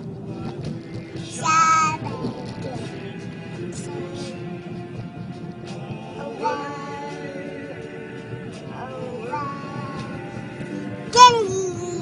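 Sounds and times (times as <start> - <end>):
music playing in car: 0.0 - 12.0
toddler singing high note: 11.1 - 12.0.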